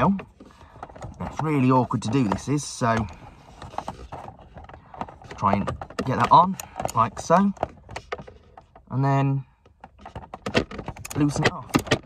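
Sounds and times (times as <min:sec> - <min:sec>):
handling noise: 0:00.0 - 0:09.0.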